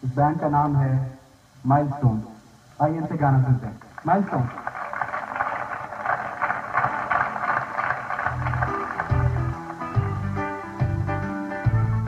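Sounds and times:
live pop-rock band: 8.3s - 12.0s.

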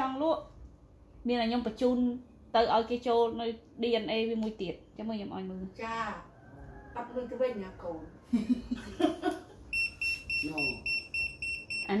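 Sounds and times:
short high-pitched beeps: 9.7s - 12.0s.

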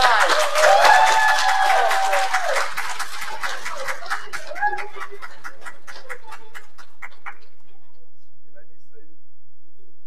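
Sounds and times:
person cheering: 0.0s - 2.6s
congregation applauding: 0.0s - 7.5s.

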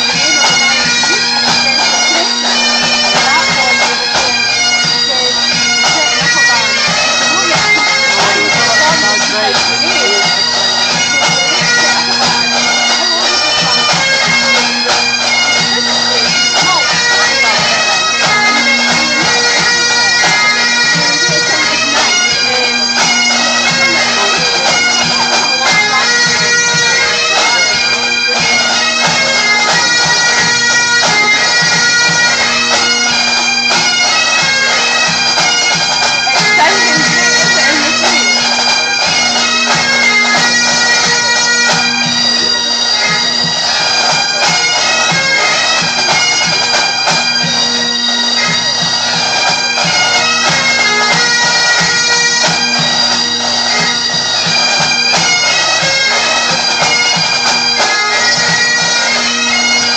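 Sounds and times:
bagpipes playing: 0.0s - 59.9s
drums playing: 7.3s - 12.4s, 16.0s - 17.8s, 18.4s - 19.5s, 20.9s - 22.2s, 36.4s - 38.3s.

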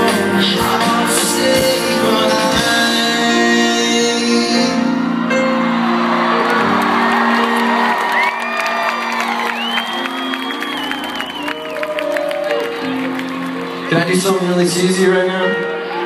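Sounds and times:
live band holding chords: 0.0s - 16.0s
crowd cheering: 4.6s - 16.0s
whoops and long whistles: 9.2s - 12.4s.

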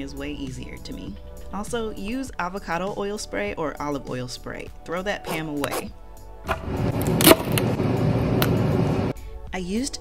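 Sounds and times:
knife cutting celery on wooden board: 5.3s - 5.9s.

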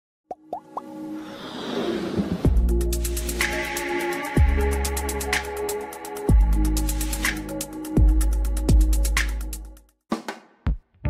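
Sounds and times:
electronic plops rising in pitch: 0.3s - 0.9s.

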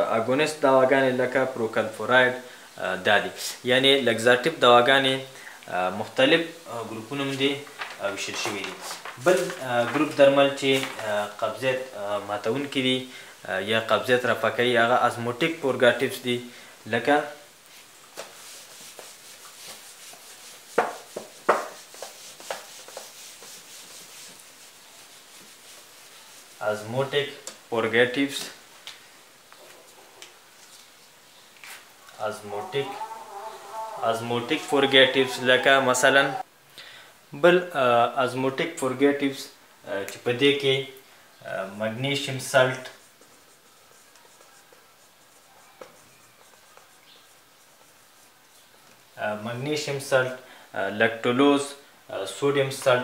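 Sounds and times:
eraser wiping whiteboard: 17.7s - 27.4s, 42.0s - 48.8s
marker tapping on whiteboard: 20.8s - 23.1s.

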